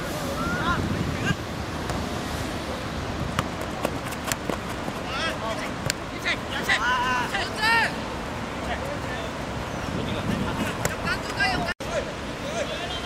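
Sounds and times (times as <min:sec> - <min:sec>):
distant shouts: 0:00.0 - 0:01.5, 0:05.0 - 0:13.0
wind rumbling on microphone: 0:00.0 - 0:05.9, 0:08.5 - 0:11.8.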